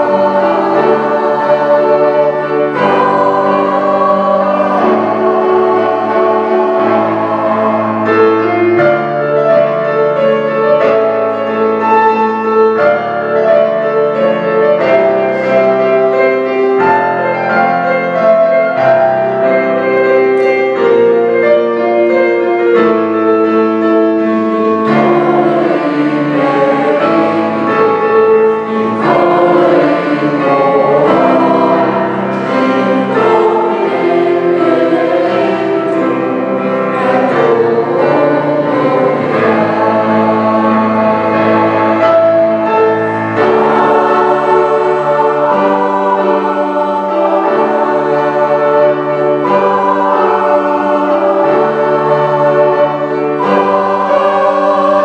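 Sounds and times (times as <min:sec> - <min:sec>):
mixed choir singing: 0:00.0 - 0:55.0
piano accompaniment: 0:00.0 - 0:55.0.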